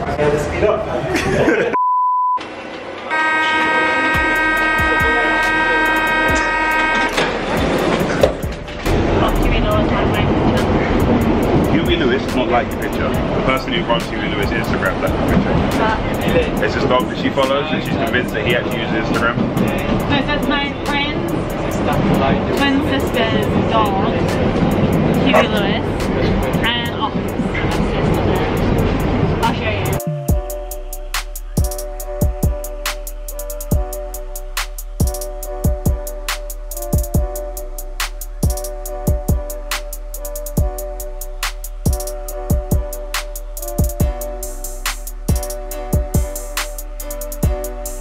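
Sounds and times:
metro train rumbling: 0:02.5 - 0:48.0
steady buzzing tone: 0:03.1 - 0:07.0
music playing: 0:03.1 - 0:48.0.

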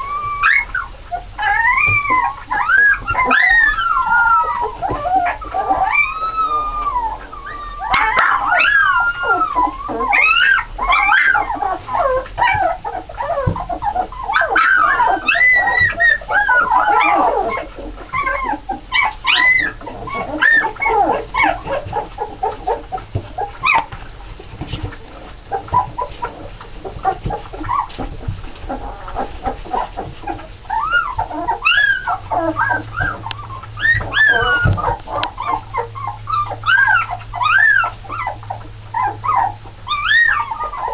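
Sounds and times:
puppies crying: 0:00.0 - 0:40.9.

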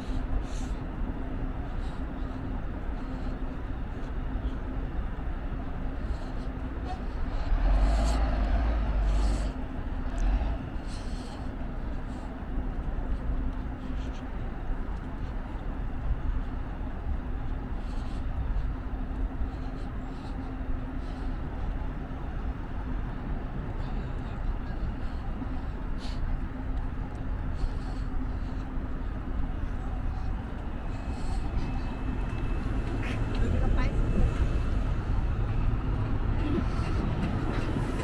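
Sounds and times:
constant low hum: 0:00.0 - 0:38.0
indistinct pedestrian voices: 0:00.0 - 0:38.0
traffic rumble: 0:00.0 - 0:38.0.

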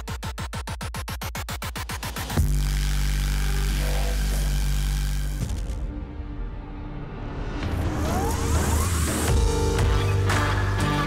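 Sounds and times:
dramatic low bass drone: 0:02.4 - 0:11.0.

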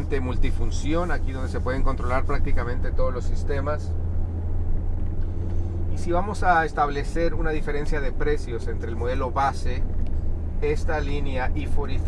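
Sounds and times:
car engine and road rumble: 0:00.0 - 0:12.0.

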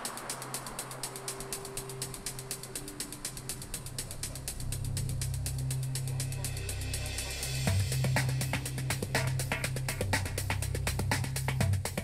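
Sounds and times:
rapid ticking clicks: 0:00.0 - 0:07.1.

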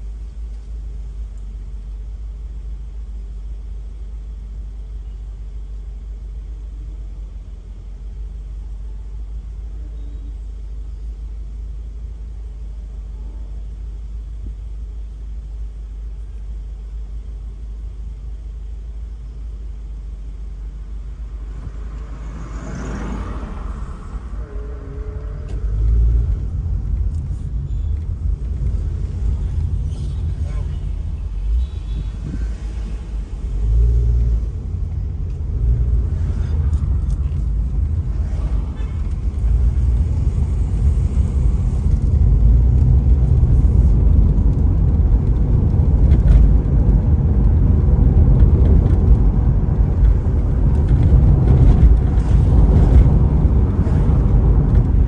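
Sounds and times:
car engine rumble: 0:00.0 - 0:55.0
road noise inside car: 0:00.0 - 0:55.0.

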